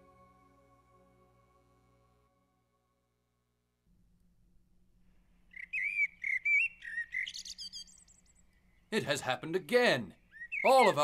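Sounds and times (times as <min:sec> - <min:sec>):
songbird chirping warbled calls: 0:05.3 - 0:11.0.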